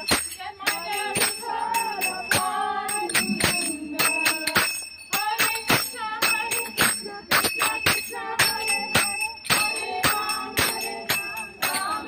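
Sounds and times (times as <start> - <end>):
hand cymbals struck in rhythm: 0.0 - 12.0
women singing a chant: 0.0 - 12.0.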